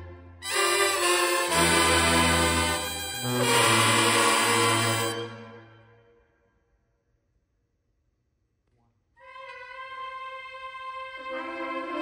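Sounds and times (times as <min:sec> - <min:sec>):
brass band chords: 0:00.0 - 0:06.0.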